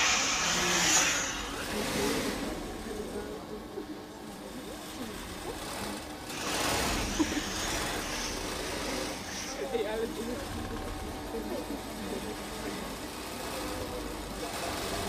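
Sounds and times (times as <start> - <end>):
rush of hiss: 0.0 - 2.9, 6.3 - 9.8
sewing machines running: 0.0 - 15.0.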